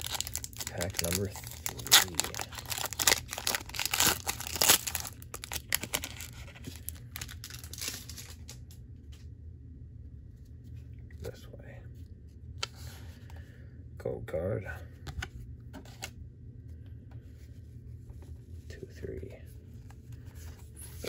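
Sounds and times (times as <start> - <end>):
foil wrapper tearing and crinkling: 0.0 - 8.5
low steady hum: 0.0 - 21.0.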